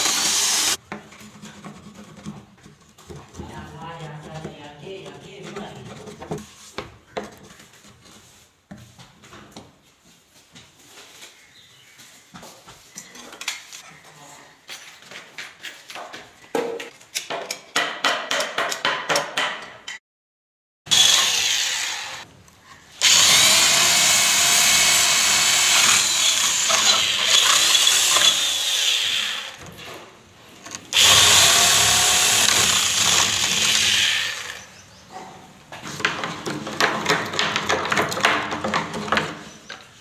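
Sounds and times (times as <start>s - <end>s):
electric drill boring into wood: 0.0s - 0.8s, 20.9s - 22.3s, 23.0s - 29.6s, 30.9s - 34.7s.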